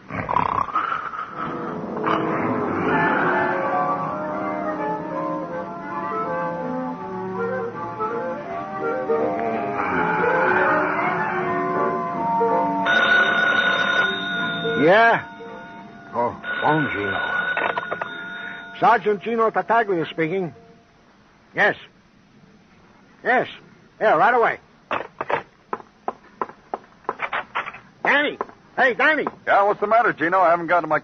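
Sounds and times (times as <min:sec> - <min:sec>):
music bridge: 0:01.4 - 0:21.5
telephone bell ringing: 0:09.8 - 0:19.7
irregular knocks and clicks: 0:24.9 - 0:27.8.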